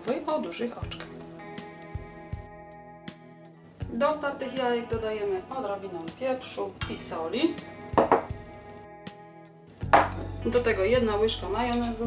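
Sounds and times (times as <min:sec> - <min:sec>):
quiet background music: 0:00.0 - 0:12.0
sharp knock: 0:08.0 - 0:08.3.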